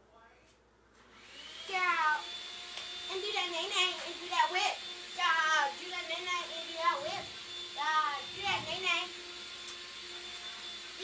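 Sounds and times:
child calling: 0:07.8 - 0:09.1.

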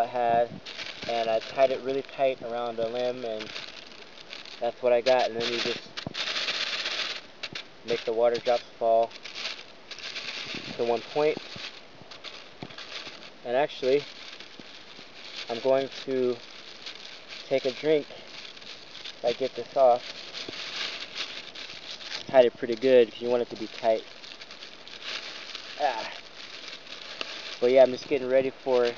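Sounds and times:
plastic bag crinkling: 0:00.0 - 0:28.9.

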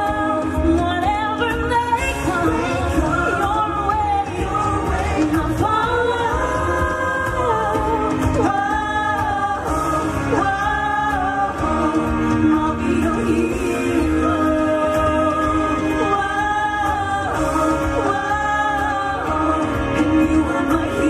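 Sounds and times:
backing music: 0:00.0 - 0:21.0
woman singing pop ballad: 0:00.0 - 0:21.0.

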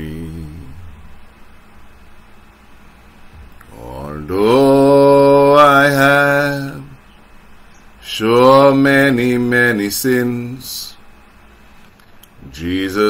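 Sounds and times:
man singing a hymn: 0:00.0 - 0:01.1, 0:03.7 - 0:07.0, 0:08.0 - 0:11.0, 0:12.4 - 0:13.0.

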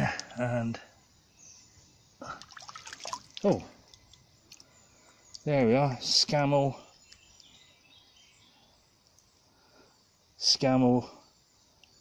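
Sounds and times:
stream water splashing: 0:02.3 - 0:04.6.

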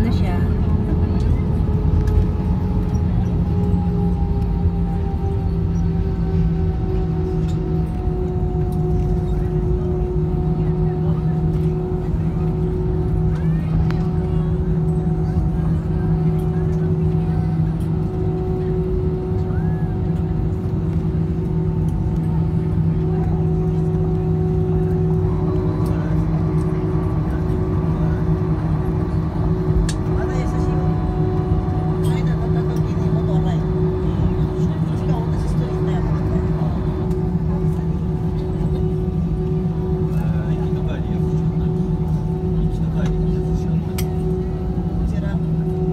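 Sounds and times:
constant hum: 0:00.0 - 0:45.9
jet engines idling: 0:00.0 - 0:45.9.

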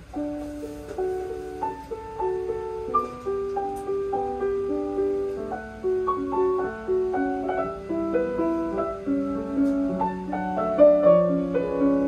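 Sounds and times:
solo grand piano: 0:00.0 - 0:12.0.

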